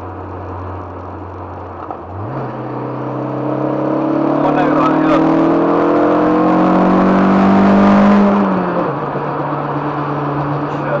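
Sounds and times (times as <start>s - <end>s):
car engine accelerating: 0.0s - 11.0s
road noise: 0.0s - 11.0s.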